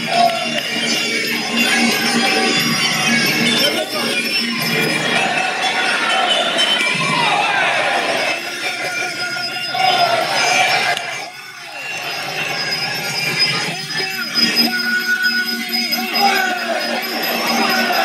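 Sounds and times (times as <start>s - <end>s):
crowd shouting and cheering: 0.0s - 18.0s
ring music: 0.0s - 18.0s.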